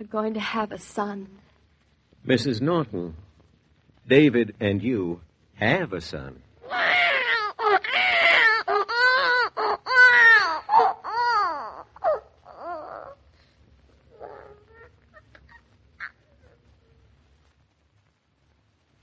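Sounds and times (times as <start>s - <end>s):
newborn baby crying: 6.6s - 13.3s, 14.0s - 16.7s.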